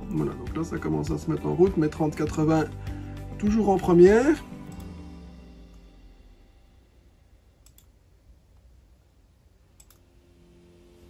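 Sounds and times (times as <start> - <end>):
computer mouse clicks: 7.6 - 7.9, 9.8 - 10.0.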